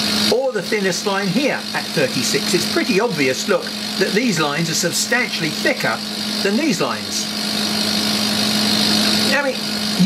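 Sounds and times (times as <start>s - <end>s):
machine hum with whirring hiss: 0.0s - 10.0s.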